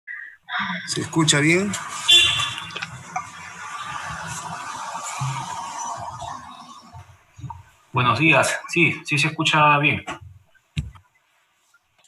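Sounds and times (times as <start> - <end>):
steady hiss: 0.2 - 10.0.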